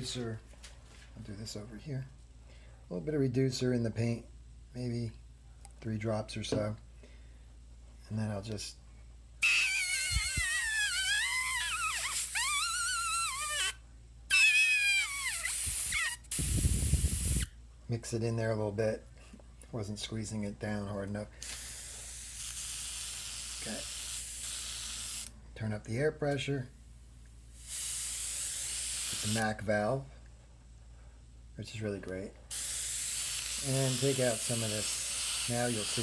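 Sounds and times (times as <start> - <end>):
airbrush air hiss with whistle: 15.0 - 17.5, 27.6 - 29.4, 32.5 - 36.0.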